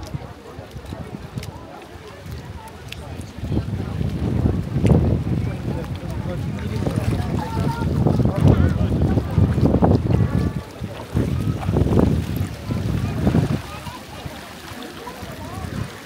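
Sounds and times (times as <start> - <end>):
gusty wind on microphone: 0.0 - 14.4, 15.2 - 16.0
people talking: 0.0 - 16.0.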